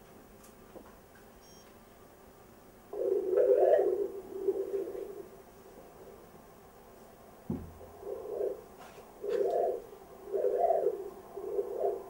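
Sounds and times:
faint scanner beep: 1.4s - 1.8s.

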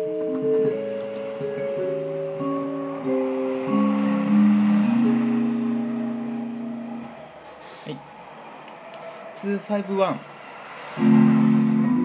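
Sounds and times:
keyboard playing slow chords: 0.0s - 7.8s, 10.9s - 12.0s.

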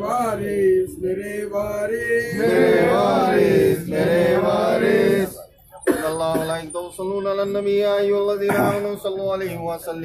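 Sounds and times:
men chanting: 0.0s - 5.4s.

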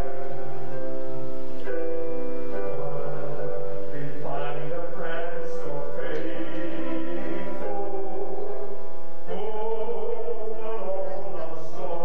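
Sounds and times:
chant-like hymn singing: 1.6s - 12.0s.

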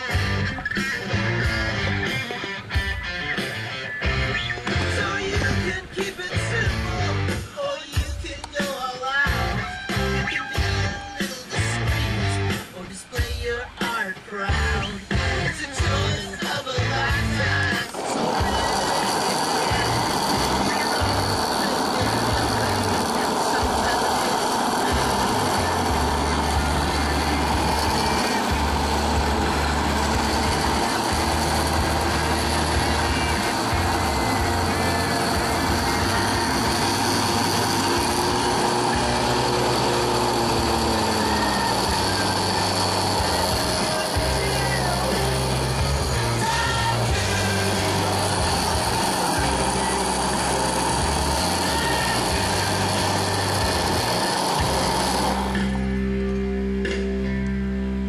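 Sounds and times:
electric blender running: 0.0s - 7.3s, 15.8s - 56.2s
music playing: 0.0s - 58.0s.

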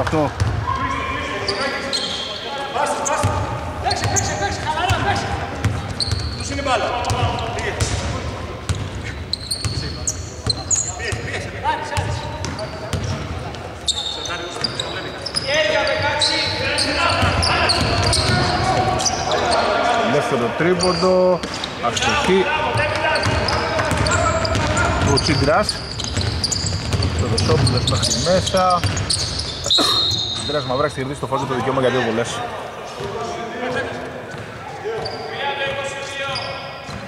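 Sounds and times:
sneaker squeaks: 0.0s - 19.9s, 20.6s - 31.1s, 32.9s - 37.0s
players calling out: 0.0s - 37.0s
basketball bouncing on hardwood: 22.9s - 25.2s, 26.0s - 27.8s, 28.8s - 29.1s.

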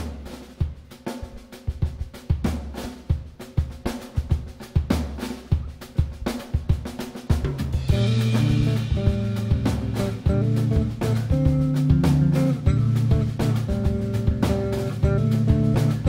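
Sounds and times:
jazz drum kit playing: 0.0s - 16.0s
sustained band notes: 7.6s - 16.0s.

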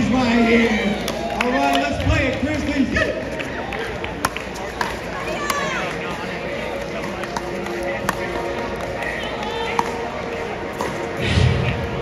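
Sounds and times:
crowd murmur and voices: 0.0s - 12.0s.

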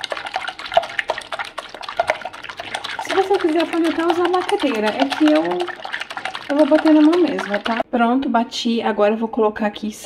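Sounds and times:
whisk beating eggs in a bowl: 0.0s - 7.9s.

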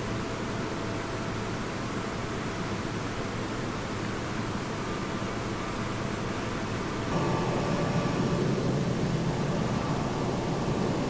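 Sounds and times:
jet aircraft rushing with whine: 6.0s - 11.0s.

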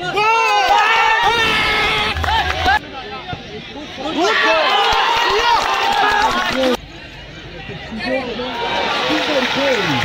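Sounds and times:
crowd of spectators shouting: 0.0s - 3.2s, 3.9s - 6.8s.

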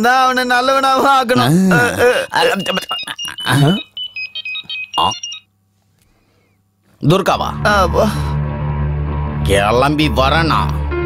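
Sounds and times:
phone ringtone beeps: 2.4s - 5.5s.

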